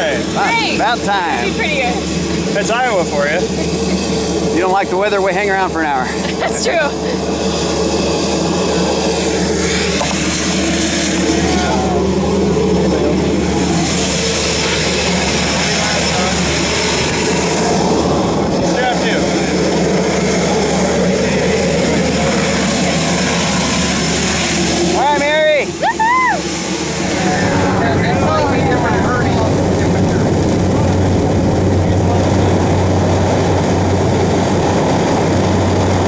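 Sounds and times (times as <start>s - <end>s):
voices: 0.0s - 7.3s, 11.1s - 23.7s, 24.8s - 34.3s
propeller plane engine droning: 0.0s - 36.0s.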